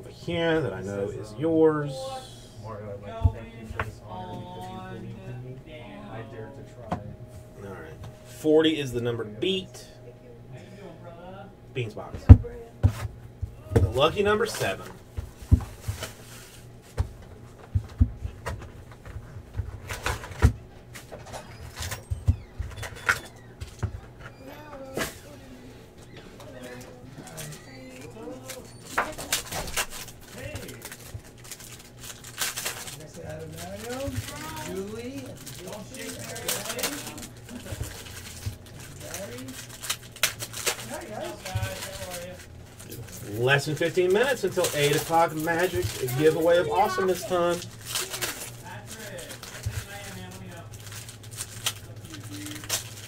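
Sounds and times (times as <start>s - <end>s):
foil wrapper crinkling: 14.0s - 16.7s, 26.5s - 53.0s
card packs clicking and tapping: 28.4s - 53.0s.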